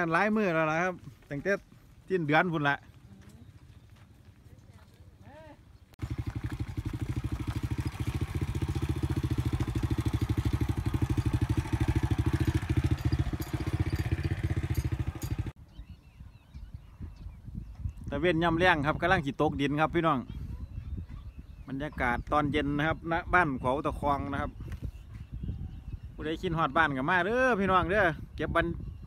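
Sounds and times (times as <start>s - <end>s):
motorcycle engine chugging: 6.0s - 15.6s.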